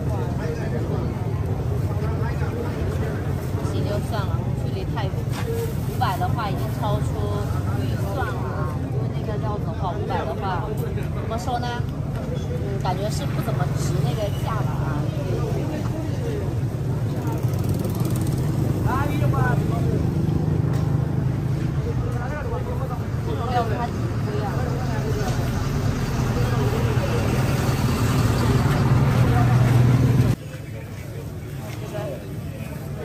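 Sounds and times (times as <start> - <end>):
people talking: 0.0 - 33.0.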